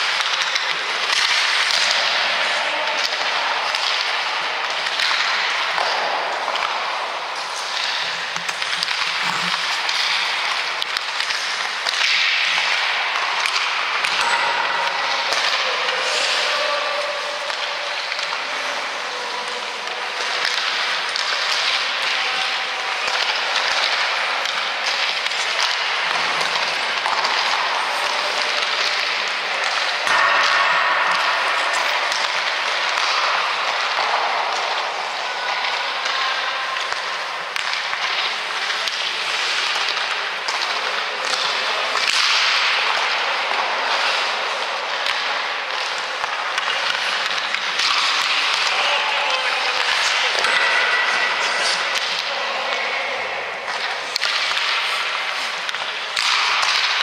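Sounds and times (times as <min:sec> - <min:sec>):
skate blades scraping ice: 0:00.0 - 0:14.4, 0:15.0 - 0:30.4, 0:31.0 - 0:57.0
clacks of sticks and pucks: 0:00.0 - 0:57.0.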